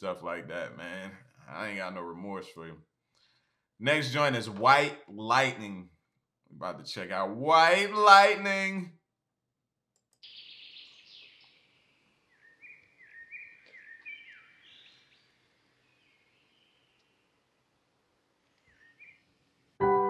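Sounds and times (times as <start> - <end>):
birds chirping: 10.2 - 17.4, 18.5 - 19.4
piano music: 19.8 - 20.0.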